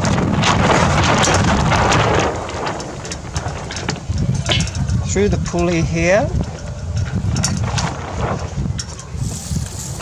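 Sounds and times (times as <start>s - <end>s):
rope ticking through fittings: 0.0s - 8.0s
wind buffeting microphone: 0.0s - 10.0s.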